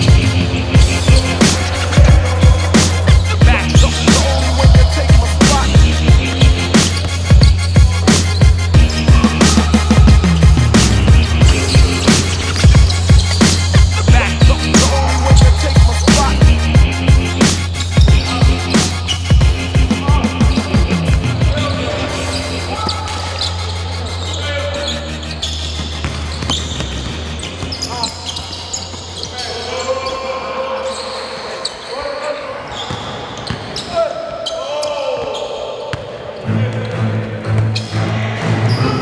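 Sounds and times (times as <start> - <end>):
hip hop beat with deep bass: 0.0 - 24.3
players' voices echoing: 0.0 - 39.0.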